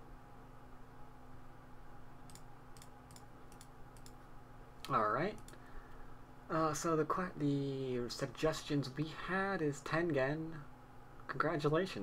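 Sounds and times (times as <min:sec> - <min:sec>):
faint electrical hum: 0:00.0 - 0:12.0
light computer clicks: 0:02.2 - 0:04.2, 0:04.8 - 0:05.6.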